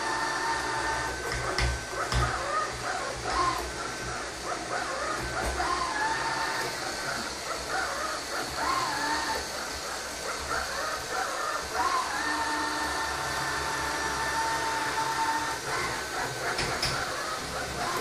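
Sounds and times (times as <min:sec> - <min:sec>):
robot vacuum cleaner whirring: 0:00.0 - 0:18.0.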